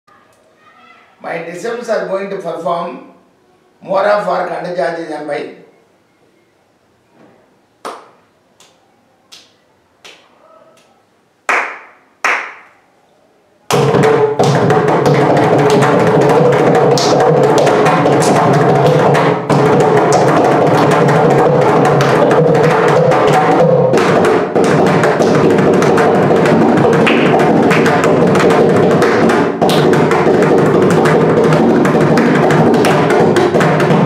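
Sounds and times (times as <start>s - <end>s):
sharp hand claps: 7.8s - 10.9s, 11.5s - 12.8s, 13.7s - 34.0s
drums playing fast rhythm: 13.7s - 34.0s.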